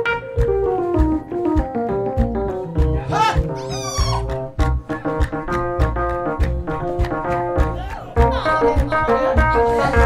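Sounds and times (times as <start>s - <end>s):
upbeat gospel band music: 0.0s - 10.0s.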